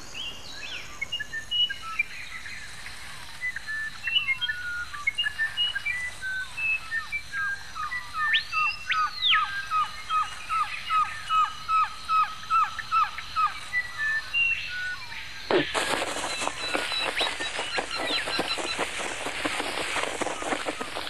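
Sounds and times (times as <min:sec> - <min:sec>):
birds chirping and whistling: 0:03.4 - 0:21.0.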